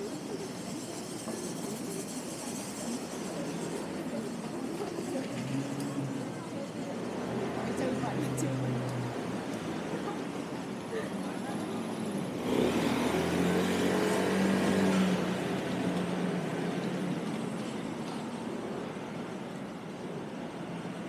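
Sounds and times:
distant voices: 0.0s - 21.0s
motor scooter engine: 7.4s - 18.0s.

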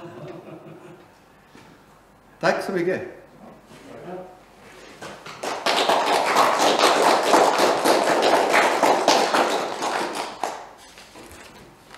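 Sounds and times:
applause: 5.2s - 10.7s.

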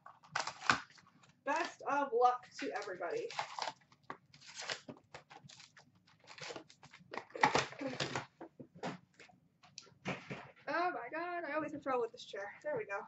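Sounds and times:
card packs rustling and crinkling: 0.0s - 10.6s.

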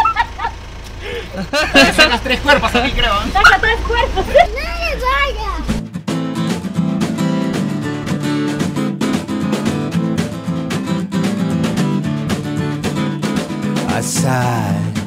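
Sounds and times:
strummed acoustic guitar: 1.4s - 15.0s.

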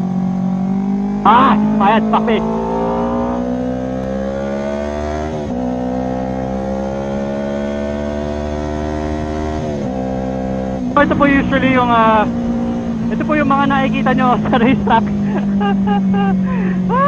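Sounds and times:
motorcycle engine accelerating: 0.0s - 17.0s.

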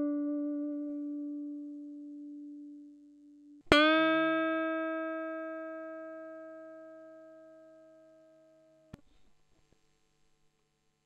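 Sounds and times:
electric guitar notes ringing: 0.0s - 8.9s.

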